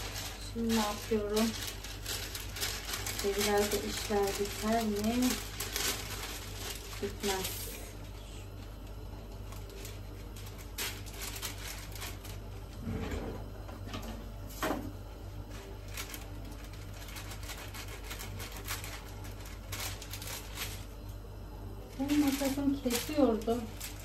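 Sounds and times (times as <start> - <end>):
paper rustling: 0.0 - 8.3, 9.3 - 12.8, 15.5 - 21.1, 21.9 - 24.0
low steady hum: 0.0 - 24.0
kitchen drawer opening: 12.8 - 14.1.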